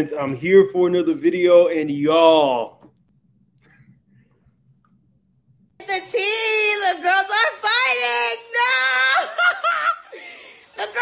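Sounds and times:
woman shouting excitedly: 5.8s - 9.7s, 10.8s - 11.0s
woman laughing: 8.8s - 11.0s.

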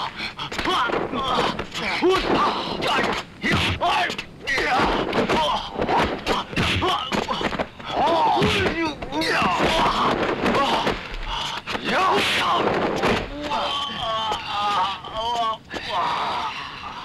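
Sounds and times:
fighters shouting and grunting: 0.0s - 17.0s
punch and kick impacts: 2.1s - 4.0s, 4.6s - 7.7s.

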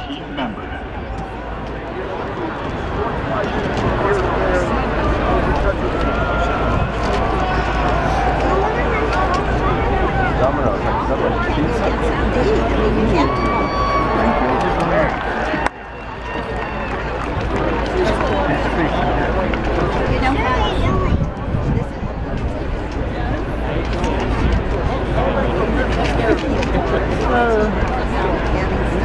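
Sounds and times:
crowd babble in stadium: 0.0s - 29.0s.

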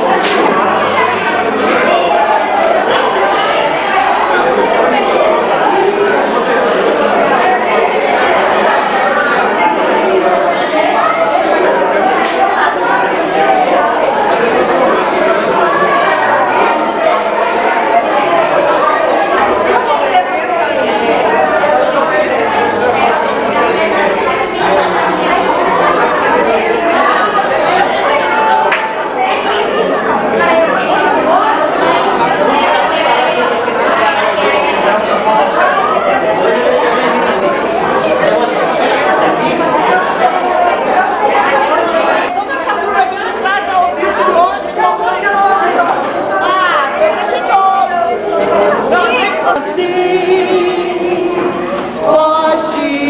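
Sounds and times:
crowd chatter: 0.0s - 53.0s.

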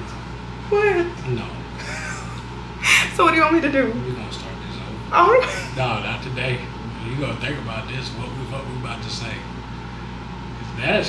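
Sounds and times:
breathy laughter: 1.8s - 2.4s.

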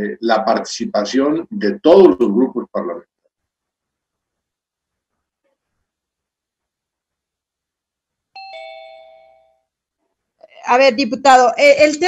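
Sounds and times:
two-note chime: 8.4s - 9.6s.

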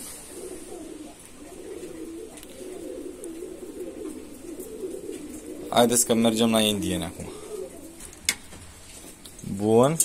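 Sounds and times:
pigeons cooing: 0.0s - 9.3s.

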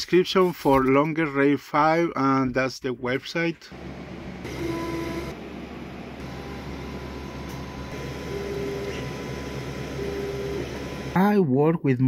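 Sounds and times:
laser engraver fan hum: 3.7s - 11.2s
pitched motor whines: 3.7s - 11.2s.

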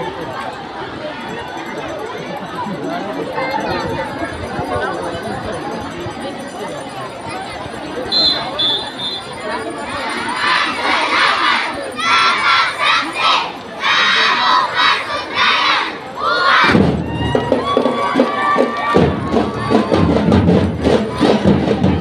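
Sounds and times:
children shouting chanted phrases: 9.8s - 16.9s
drum and lyre band playing: 16.6s - 22.0s.

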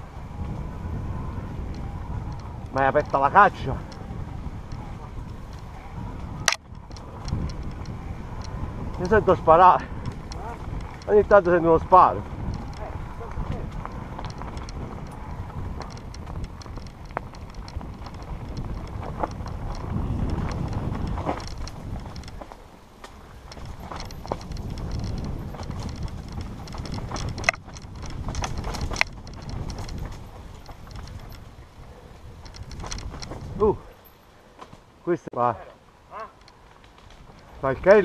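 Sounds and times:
wind rumble on microphone: 0.0s - 34.2s, 35.8s - 38.0s
bike rattling and clicking: 0.0s - 35.2s, 35.8s - 38.0s
tyre noise on dirt trail: 0.0s - 38.0s.

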